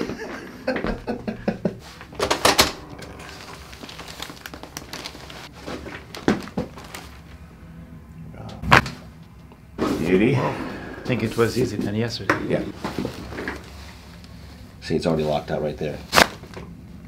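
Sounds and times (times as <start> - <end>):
loud neck joint crack: 16.1 - 16.6.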